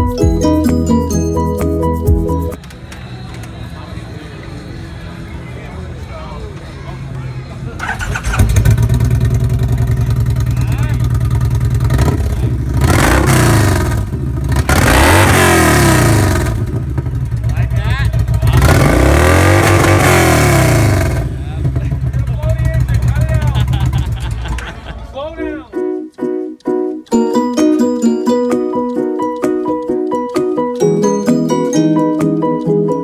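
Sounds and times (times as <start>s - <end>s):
motorcycle engine revving and idling: 7.8s - 24.6s.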